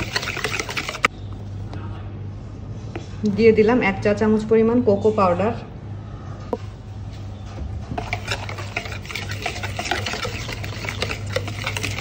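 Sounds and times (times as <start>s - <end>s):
wire whisk beating in bowl: 0.0s - 1.1s, 8.0s - 12.0s.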